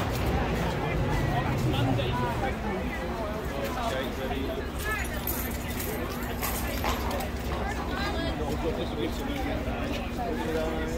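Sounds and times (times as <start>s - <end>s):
crowd of people talking: 0.0s - 10.9s.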